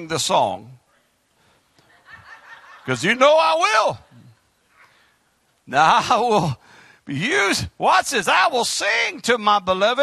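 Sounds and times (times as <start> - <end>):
man preaching: 0.0 - 0.9, 2.8 - 4.4, 5.6 - 10.0
soft laughter of people: 1.8 - 3.0.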